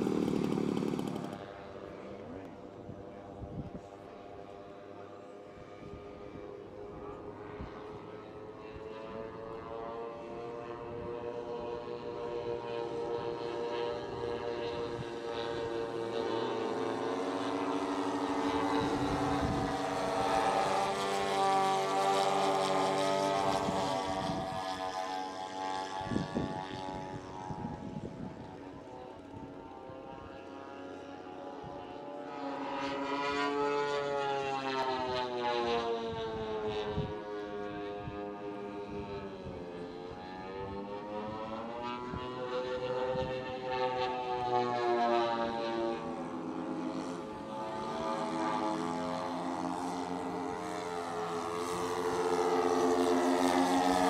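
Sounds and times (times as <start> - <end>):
model plane engines droning: 0.0 - 54.0.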